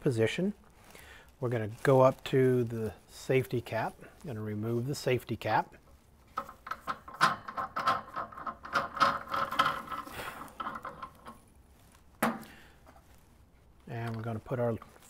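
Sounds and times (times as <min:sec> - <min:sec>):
metal cap unscrewing clicks: 0:06.4 - 0:11.4.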